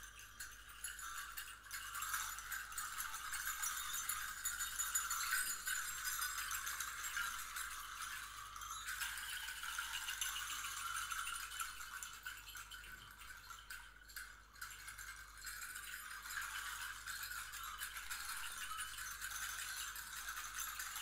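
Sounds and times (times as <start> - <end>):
percussion rattles jingling: 0.0 - 21.0.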